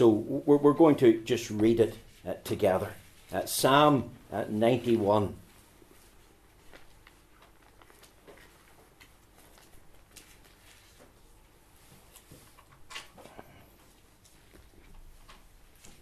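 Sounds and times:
pages turning rustle: 0:05.9 - 0:13.4.

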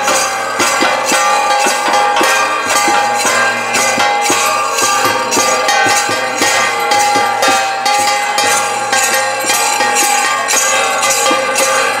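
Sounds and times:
drum strokes: 0:00.0 - 0:12.0
metal hand cymbals struck: 0:00.0 - 0:12.0.

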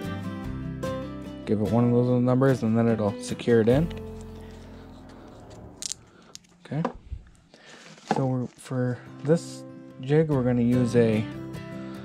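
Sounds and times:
plastic bottle cap clicks: 0:05.8 - 0:06.5.

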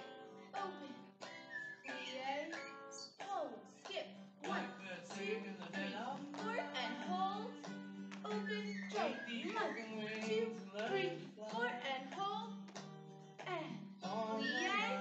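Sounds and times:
acoustic guitar: 0:00.0 - 0:15.0
person singing: 0:00.5 - 0:01.0, 0:04.4 - 0:12.5, 0:13.4 - 0:15.0.

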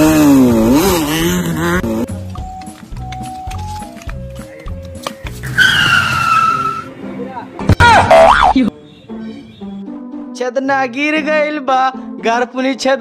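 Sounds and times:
background music: 0:00.0 - 0:13.0
wobbling boing effect: 0:08.0 - 0:08.6.

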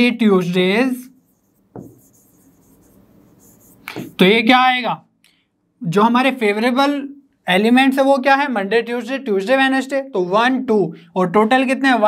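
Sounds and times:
marker scratching on whiteboard: 0:00.9 - 0:04.2
marker tapping whiteboard: 0:01.6 - 0:04.2.

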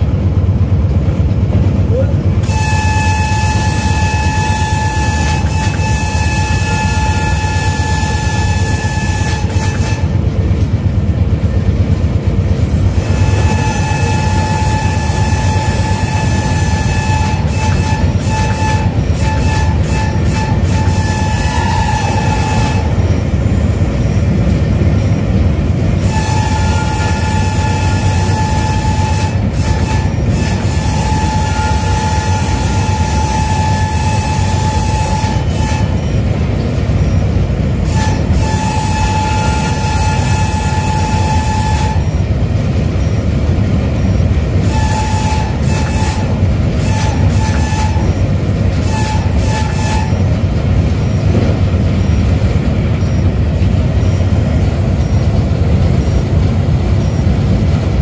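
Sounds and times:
locomotive engine rumble: 0:00.0 - 0:58.0
locomotive horn blasts: 0:02.4 - 0:10.4, 0:12.9 - 0:23.2, 0:25.9 - 0:36.3, 0:37.0 - 0:42.4, 0:44.5 - 0:51.5.

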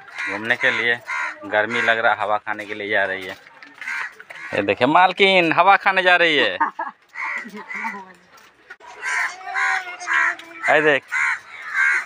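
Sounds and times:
bird calling: 0:00.0 - 0:02.0, 0:06.6 - 0:12.0.

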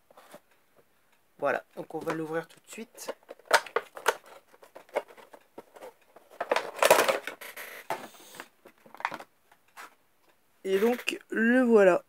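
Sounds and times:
cardboard box packaging rustling: 0:02.0 - 0:09.3.

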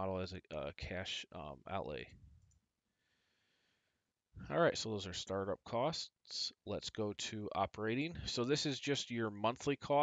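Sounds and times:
man's voice: 0:00.0 - 0:02.1, 0:04.4 - 0:10.0.

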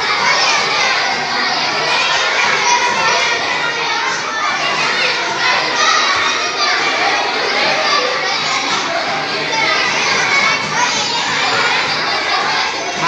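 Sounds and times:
children talking and calling out: 0:00.0 - 0:13.0.

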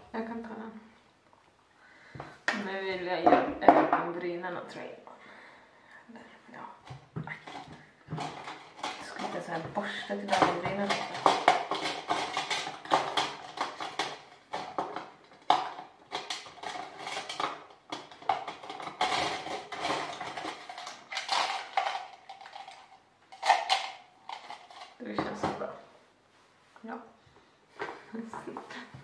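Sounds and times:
plastic and metal containers clinking: 0:06.8 - 0:25.7.

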